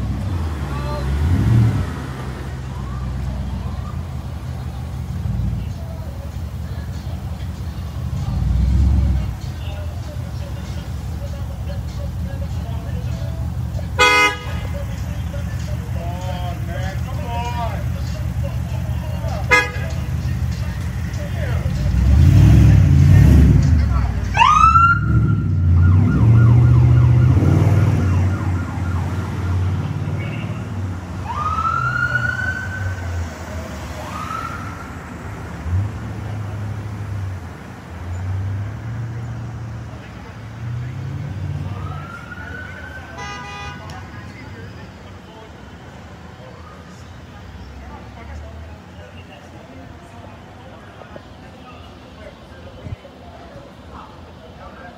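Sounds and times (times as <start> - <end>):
vehicle engines idling: 0.0 - 54.9
police siren whoops: 24.3 - 29.8, 31.2 - 33.2, 34.0 - 35.0, 41.6 - 43.2.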